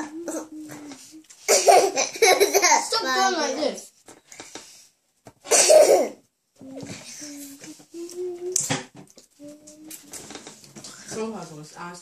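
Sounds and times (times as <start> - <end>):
person coughing: 5.5 - 6.2.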